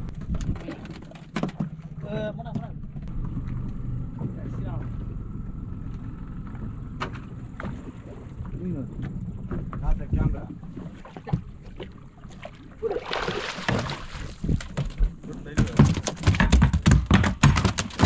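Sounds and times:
fish splashing at water surface: 0:10.8 - 0:14.7.

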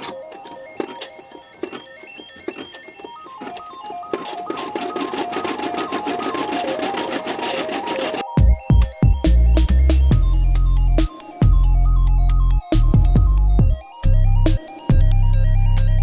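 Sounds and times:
embroidery machine needle clattering: 0:00.0 - 0:08.4
background music with stepping melody: 0:00.0 - 0:16.0.

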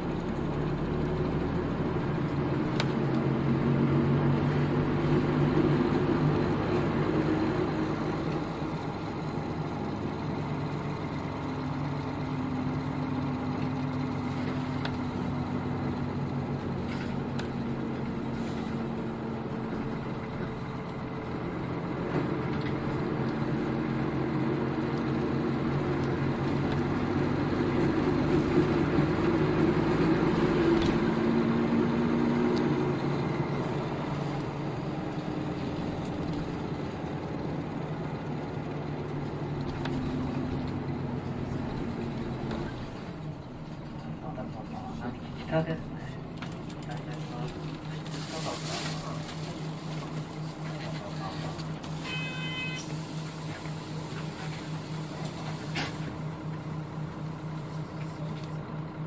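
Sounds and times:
bus diesel engine: 0:00.0 - 0:59.0.

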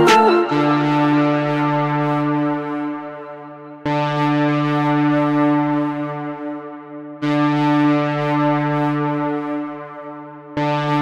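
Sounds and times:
synthesizer chord ringing: 0:00.0 - 0:05.1.

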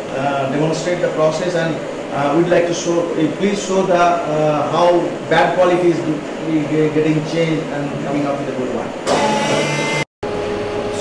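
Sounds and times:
welding machine whirring: 0:09.1 - 0:10.1.

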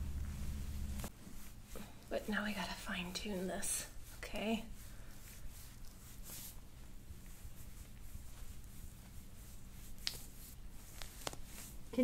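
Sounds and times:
hands rubbing skin: 0:00.2 - 0:12.0.

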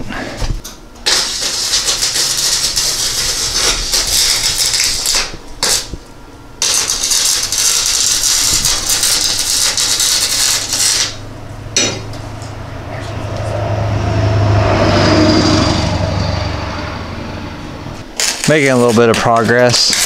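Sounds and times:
welder arc crackling: 0:00.6 - 0:12.5, 0:18.0 - 0:20.0.

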